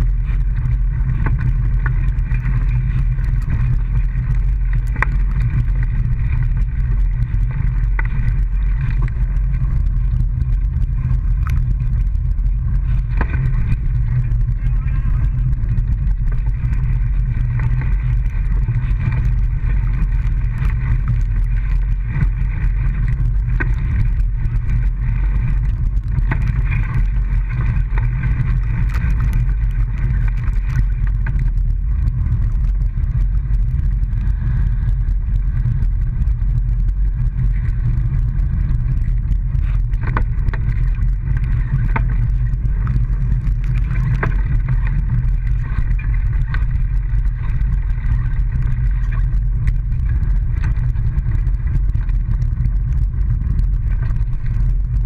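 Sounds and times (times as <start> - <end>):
small engine running steadily: 0.0 - 55.0.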